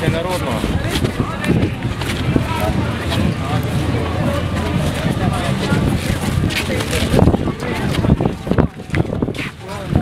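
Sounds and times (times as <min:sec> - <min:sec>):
people chattering: 0:00.0 - 0:10.0
low outdoor rumble: 0:00.5 - 0:10.0.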